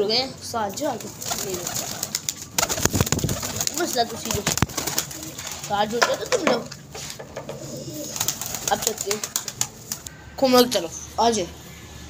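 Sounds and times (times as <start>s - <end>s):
pigeons cooing: 0.8s - 6.5s, 7.2s - 10.2s.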